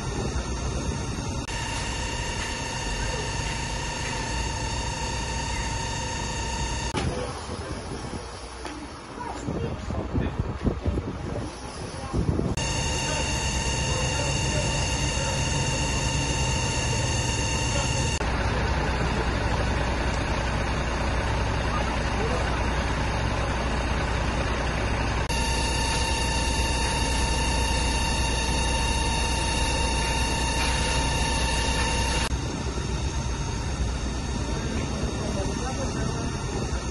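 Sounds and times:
fire engine pump rumble: 0.0 - 36.9
steady whine: 0.0 - 36.9.

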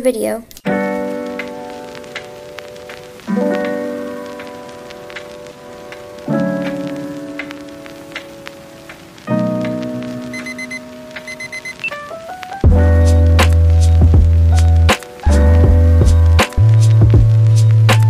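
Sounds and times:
faint clicks: 0.5 - 12.0
keyboard chords: 0.6 - 18.0.

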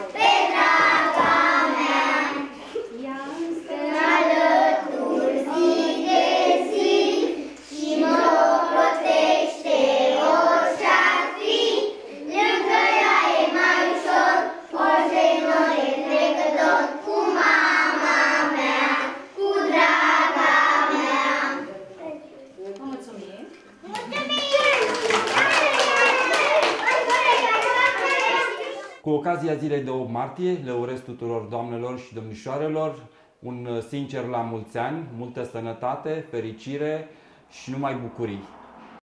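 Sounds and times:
young children singing: 0.0 - 2.6, 3.5 - 21.7.

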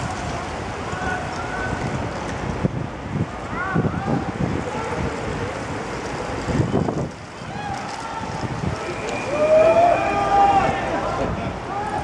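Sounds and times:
bicycles riding past: 0.0 - 12.0
wind on microphone: 0.0 - 12.0.

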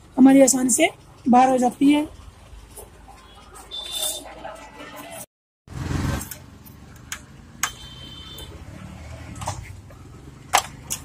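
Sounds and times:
sharp metal clicks: 10.5 - 11.0.

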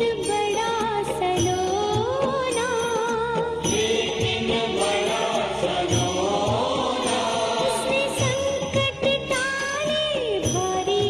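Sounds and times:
drum beats: 0.0 - 11.0
hand cymbals: 0.0 - 11.0
person singing ornamented line: 0.0 - 11.0.

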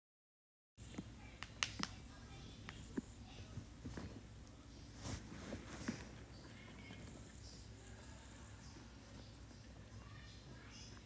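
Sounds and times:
faint low hum: 0.8 - 11.0.

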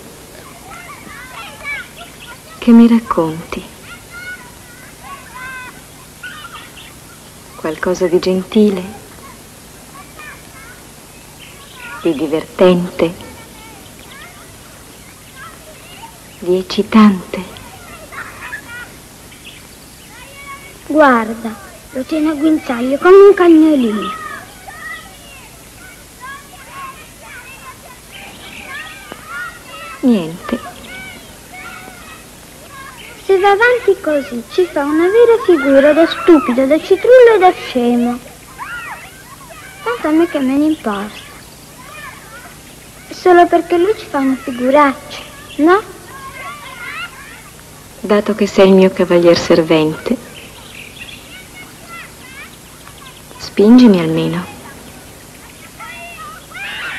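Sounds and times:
birds chirping: 0.0 - 56.9
faint high-pitched calls: 0.0 - 56.9
film dialogue: 25.6 - 38.5.

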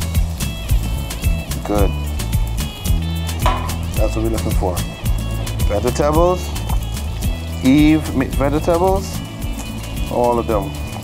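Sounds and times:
music with steady beat and bass: 0.0 - 11.0.

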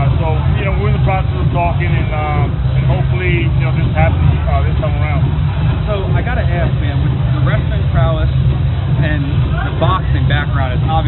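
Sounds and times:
men talking: 0.0 - 11.0
steady low rumble: 0.0 - 11.0.

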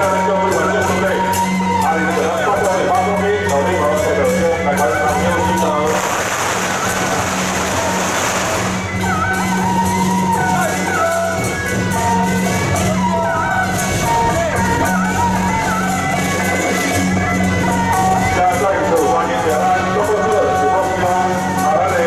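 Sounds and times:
procession band music: 0.0 - 22.0
loud hissing wash: 5.9 - 8.9.

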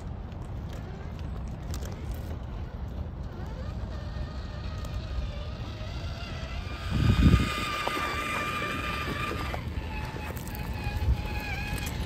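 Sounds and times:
toy car motor whining: 0.6 - 12.0.

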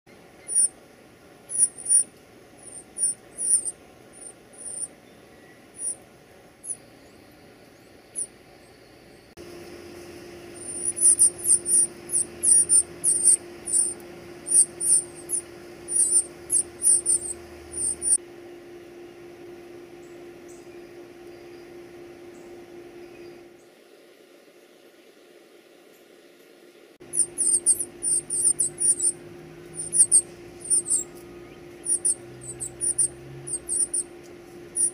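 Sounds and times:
nestlings peeping: 0.1 - 18.2, 27.0 - 34.9
faint steady hum: 0.1 - 34.9.

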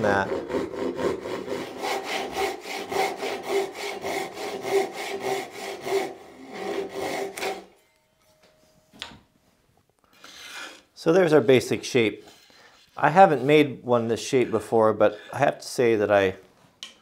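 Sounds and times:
hand saw cutting wood: 0.0 - 7.7.

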